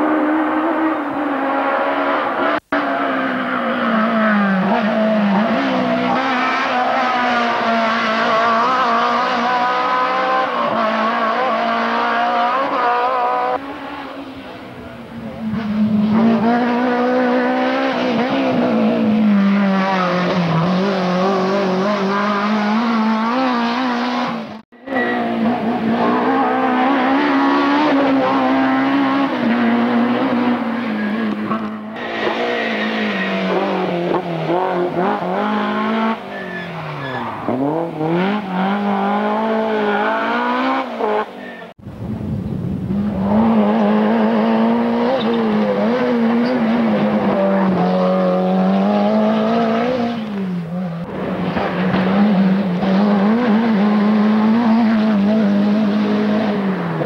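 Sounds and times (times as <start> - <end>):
rally car engines revving: 0.0 - 41.8, 42.6 - 57.0.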